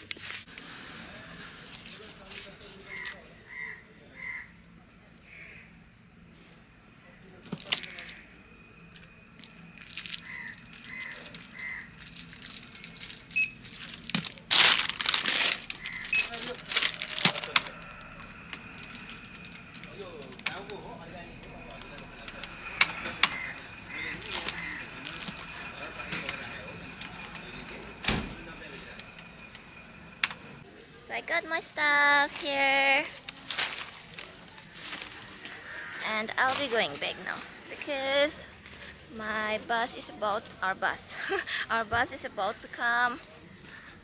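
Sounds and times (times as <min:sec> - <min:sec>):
plastic packets crinkling: 0:07.6 - 0:08.2, 0:09.4 - 0:20.8, 0:24.2 - 0:25.5, 0:33.0 - 0:37.6.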